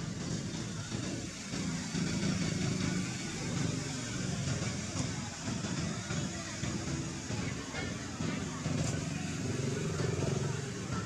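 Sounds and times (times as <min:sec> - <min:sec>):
people talking in background: 0:00.0 - 0:11.0
vehicle engine running: 0:00.0 - 0:11.0.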